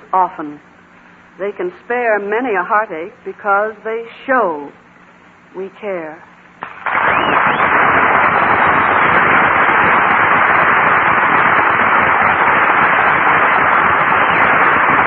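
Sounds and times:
audience applauding: 7.0 - 14.6.

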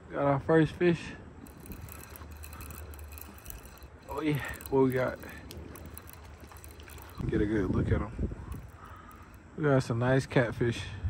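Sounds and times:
fishing reel gear whirring: 1.4 - 10.2
wind rumble on microphone: 6.9 - 8.8.

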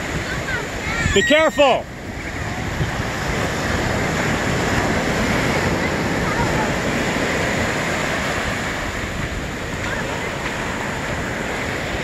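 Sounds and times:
ocean surf breaking: 0.0 - 12.0
wind buffeting microphone: 0.0 - 12.0.

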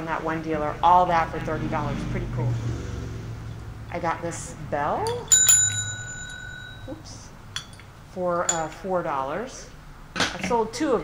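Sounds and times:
metal desk bell ringing: 5.1 - 7.8, 8.5 - 8.8.

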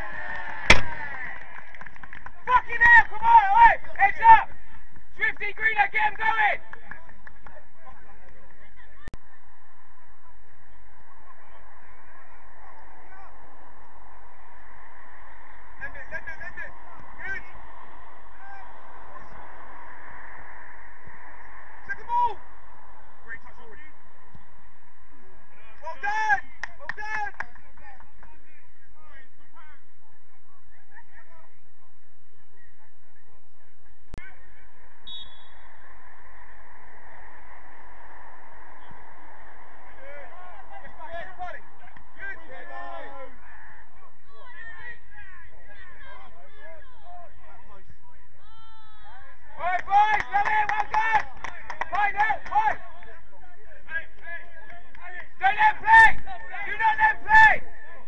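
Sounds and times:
steady background noise: 0.0 - 58.0
players shouting in distance: 11.1 - 29.8, 34.3 - 58.0.

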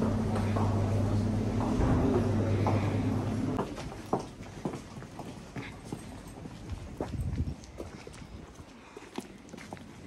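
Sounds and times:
footsteps on brick paving: 3.6 - 10.0.

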